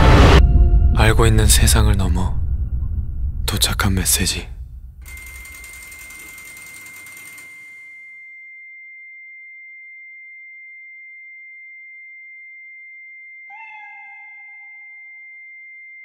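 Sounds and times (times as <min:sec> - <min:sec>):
lower tone with overtones: 0:00.0 - 0:05.1
high-pitched electronic ringing tone: 0:05.0 - 0:16.0.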